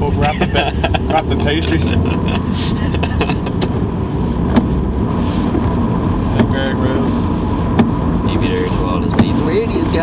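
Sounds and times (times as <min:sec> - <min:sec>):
car engine rumble: 0:00.0 - 0:10.0
tyres on wet road: 0:00.0 - 0:10.0.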